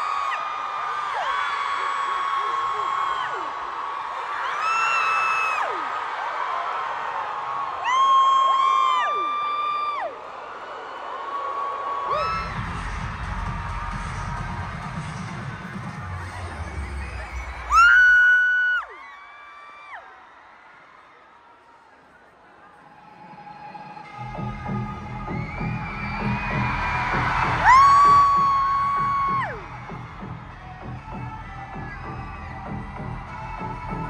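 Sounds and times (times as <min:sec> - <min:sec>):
crowd cheering: 0:00.0 - 0:34.0
live concert music: 0:12.1 - 0:18.3, 0:22.8 - 0:34.0.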